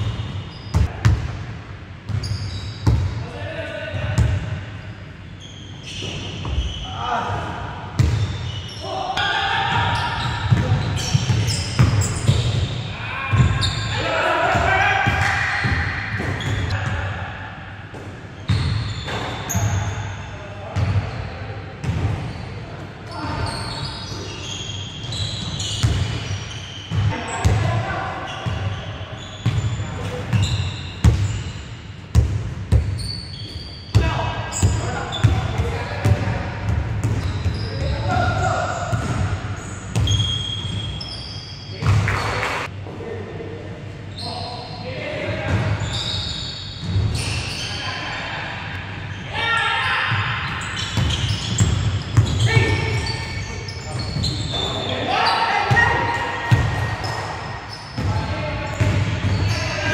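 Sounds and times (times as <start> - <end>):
players shouting: 12.9 - 17.6.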